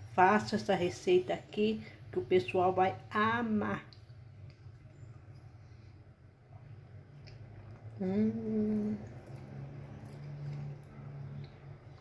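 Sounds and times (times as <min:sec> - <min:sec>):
woman humming closed-mouth: 0:08.0 - 0:09.1.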